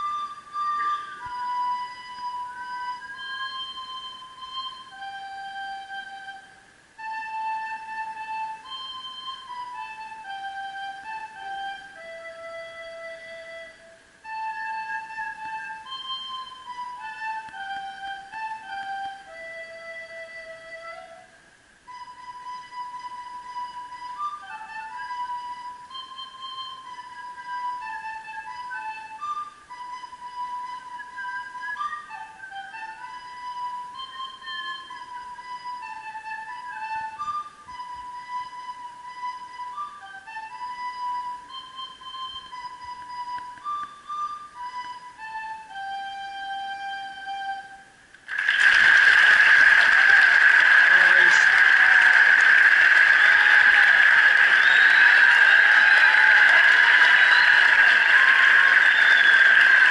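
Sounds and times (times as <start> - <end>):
recorder playing slow melody: 0.0 - 59.9.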